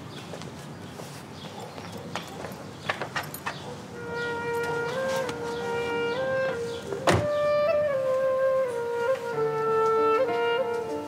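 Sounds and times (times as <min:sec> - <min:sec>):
footsteps on paving stones: 0:00.0 - 0:03.8, 0:04.5 - 0:06.5, 0:08.1 - 0:11.0
faint outdoor background: 0:00.0 - 0:11.0.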